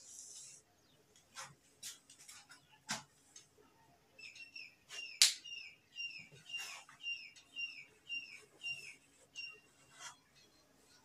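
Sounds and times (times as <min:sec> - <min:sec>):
small bird chirping: 0:03.7 - 0:11.0.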